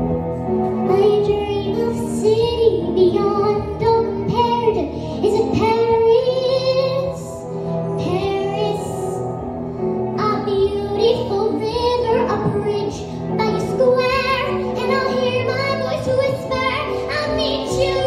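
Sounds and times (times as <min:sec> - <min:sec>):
girl singing into a microphone: 0:00.8 - 0:09.3, 0:10.1 - 0:18.0.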